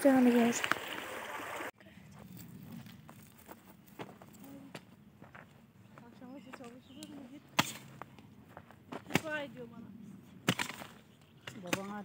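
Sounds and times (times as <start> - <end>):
hoe striking soil: 7.6 - 8.0, 10.4 - 12.0.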